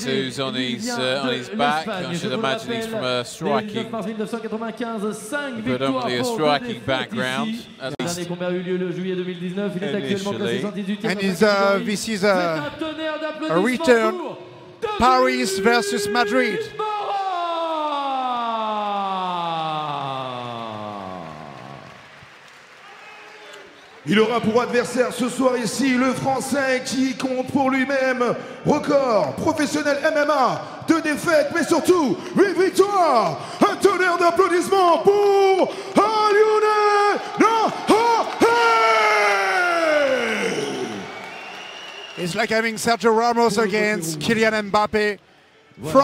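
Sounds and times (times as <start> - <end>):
announcer calling out: 3.4 - 3.8.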